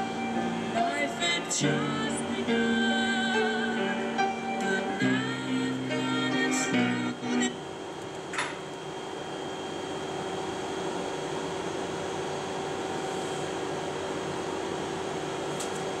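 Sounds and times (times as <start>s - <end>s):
background hum and hiss: 0.0s - 16.0s.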